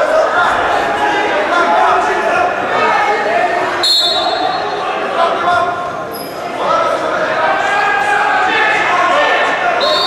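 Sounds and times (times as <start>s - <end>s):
people shouting in a hall: 0.0s - 10.0s
referee's whistle blast: 3.8s - 4.7s, 9.8s - 10.0s.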